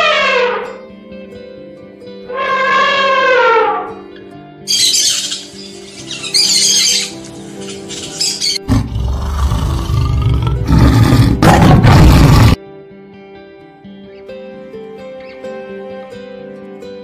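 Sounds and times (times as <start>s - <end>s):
background music: 0.0s - 17.0s
bird calls: 4.7s - 8.7s
tiger roaring: 8.6s - 12.6s.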